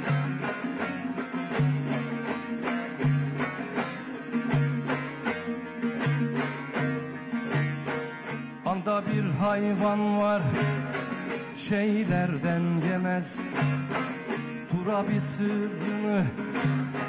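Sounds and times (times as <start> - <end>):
plucked lute melody: 0.0 - 17.0.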